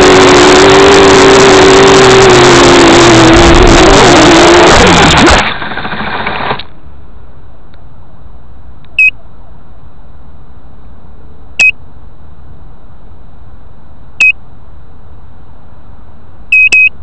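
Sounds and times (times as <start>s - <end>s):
short high electronic beeps: 16.5s - 17.0s.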